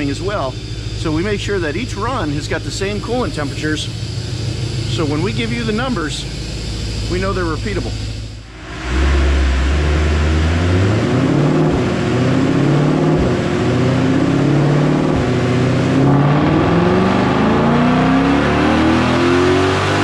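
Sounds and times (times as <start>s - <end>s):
engine revving on a dyno: 0.0s - 20.0s.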